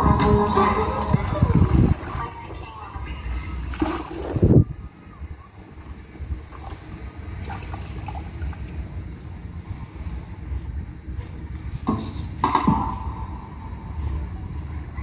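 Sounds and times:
low steady rumble: 0:00.0 - 0:15.0
mop in bucket of water: 0:00.7 - 0:04.6, 0:06.2 - 0:08.8
water splash: 0:00.9 - 0:02.6, 0:03.5 - 0:04.7, 0:06.3 - 0:08.8.

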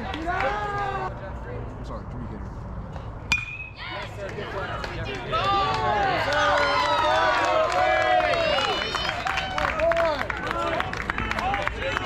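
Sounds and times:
crowd voices: 0:00.0 - 0:01.9, 0:02.9 - 0:12.0
metal bat striking ball: 0:03.3 - 0:03.8.

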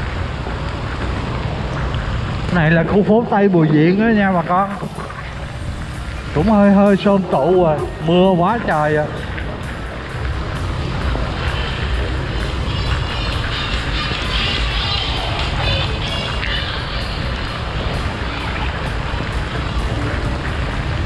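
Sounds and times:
motorbike engine: 0:00.0 - 0:21.0
wind and rain on microphone: 0:00.0 - 0:21.0
music playing: 0:02.7 - 0:21.0.

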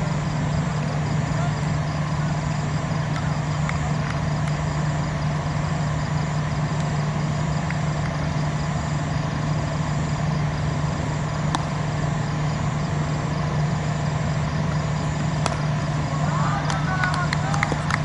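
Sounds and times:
steady low hum: 0:00.0 - 0:18.0
people shouting: 0:16.0 - 0:17.9.

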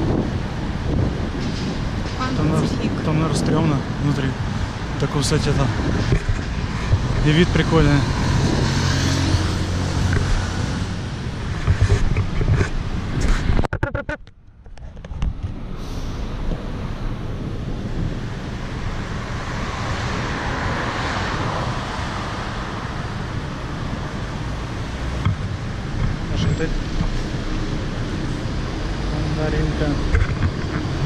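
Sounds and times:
wind on microphone: 0:00.0 - 0:29.1
city road traffic: 0:00.0 - 0:31.0
vehicle passing: 0:02.2 - 0:11.9, 0:17.8 - 0:25.2.

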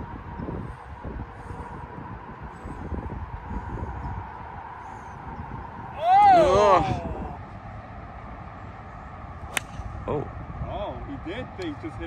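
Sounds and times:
low outdoor background: 0:00.0 - 0:12.0
golf club striking ball: 0:09.5 - 0:09.9.

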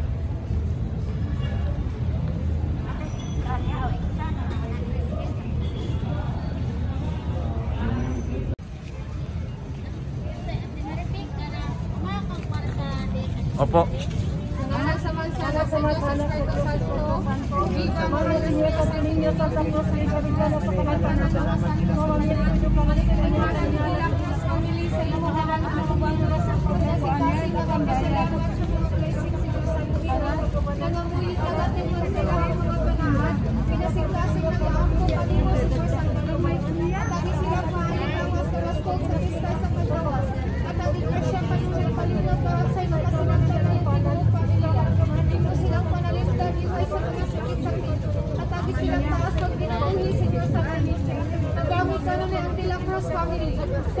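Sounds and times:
crowd chatter: 0:00.0 - 0:54.0
low rumble of street traffic: 0:00.0 - 0:54.0.

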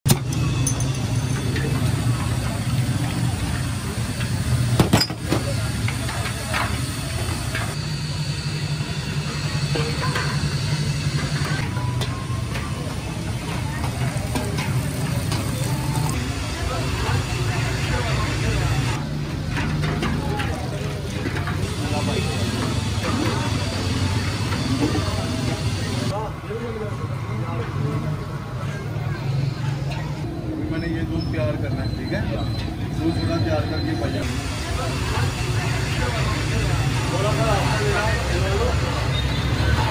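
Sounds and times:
clinks and knocks: 0:00.1 - 0:01.9.

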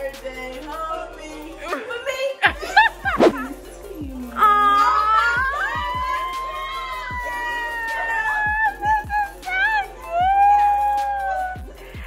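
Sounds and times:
women squealing: 0:04.2 - 0:12.0.

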